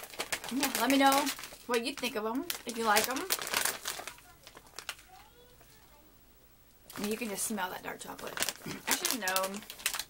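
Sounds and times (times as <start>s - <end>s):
plastic snack bag crinkling: 0.0s - 6.0s, 6.9s - 10.0s.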